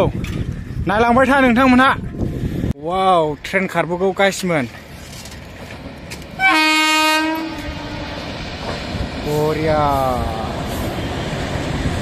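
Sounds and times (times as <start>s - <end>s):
locomotive horn blast: 6.4s - 8.3s.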